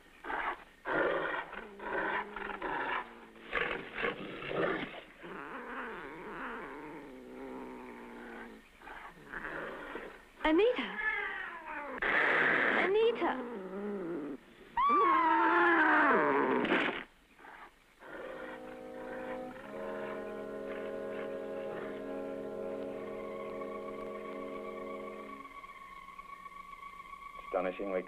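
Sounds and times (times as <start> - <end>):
woman screaming: 14.8 - 16.4
held chord of film music: 18.0 - 28.0.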